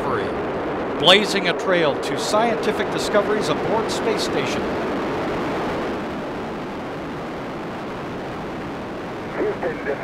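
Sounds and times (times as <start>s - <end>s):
rocket engines rumbling: 0.0s - 10.0s.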